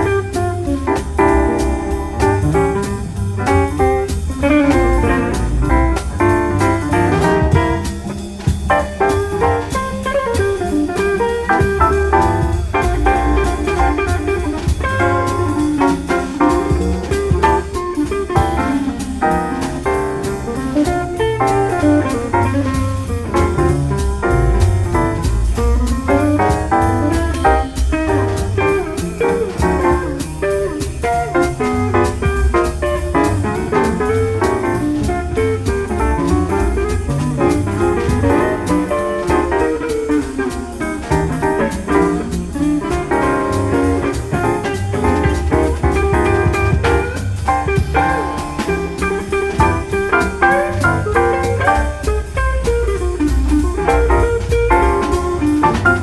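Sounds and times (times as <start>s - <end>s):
bass: 0.0s - 56.0s
drums with cymbal strokes: 0.0s - 56.0s
piano: 0.0s - 56.0s.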